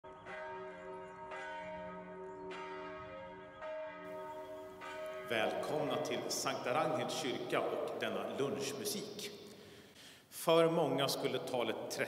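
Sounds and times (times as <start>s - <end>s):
church bell tolling: 0.1s - 9.4s.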